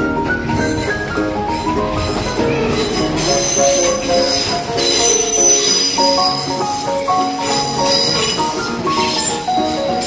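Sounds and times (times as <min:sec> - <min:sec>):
train passing at speed: 0:00.0 - 0:10.0
upbeat music: 0:00.0 - 0:10.0
wheels squealing on rails: 0:00.0 - 0:10.0.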